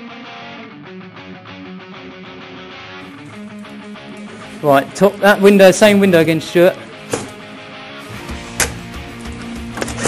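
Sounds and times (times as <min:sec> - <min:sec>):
guitar background music: 0:00.0 - 0:10.0.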